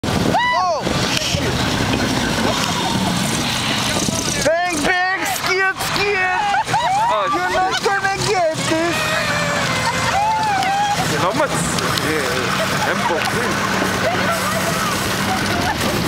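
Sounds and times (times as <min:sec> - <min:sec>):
snowmobile engine running: 0:00.1 - 0:16.0.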